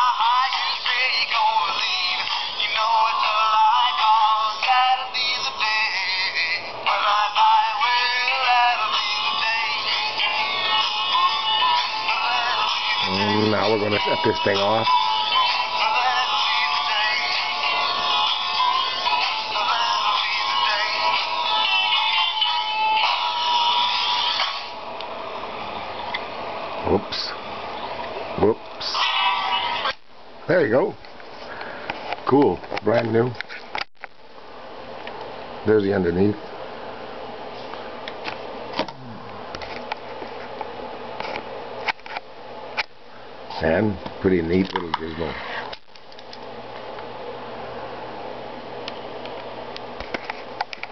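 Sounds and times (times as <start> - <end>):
tinny song from toy record player: 0.0 - 24.8, 28.8 - 30.0
steady low hum: 0.0 - 50.9.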